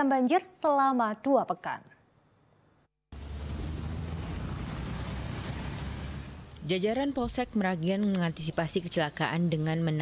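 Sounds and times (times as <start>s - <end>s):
cars passing: 3.1s - 7.4s
motorcycles passing: 3.2s - 7.4s.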